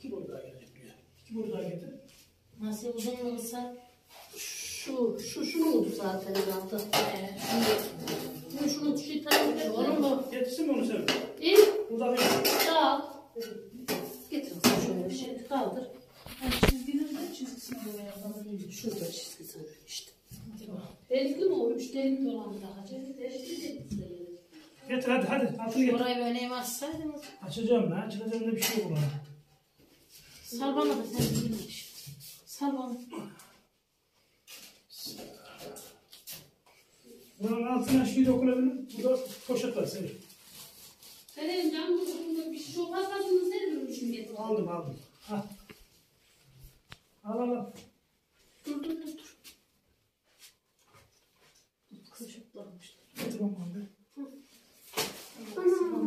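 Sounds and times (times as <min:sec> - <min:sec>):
person speaking: 0:04.3 - 0:26.9, 0:55.4 - 0:56.0.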